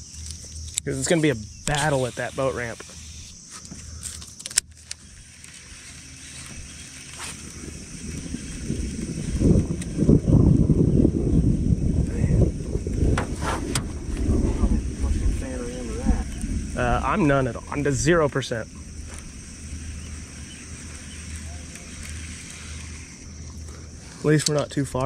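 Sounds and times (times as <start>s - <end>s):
rolling thunder: 7.6s - 22.1s.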